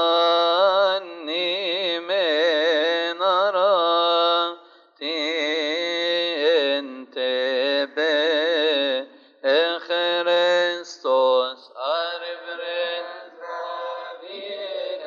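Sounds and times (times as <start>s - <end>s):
man chanting a hymn: 0.0s - 15.0s
voices chanting along: 12.0s - 15.0s.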